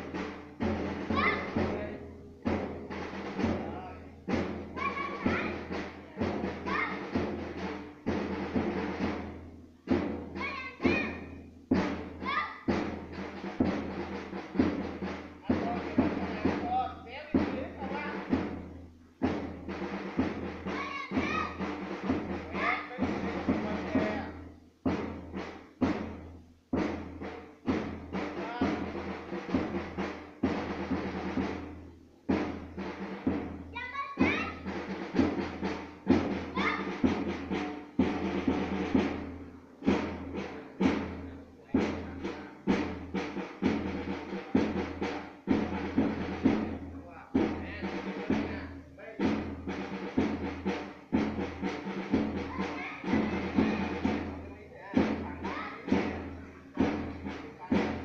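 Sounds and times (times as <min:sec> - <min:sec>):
marching drums beating: 0:00.0 - 0:58.0.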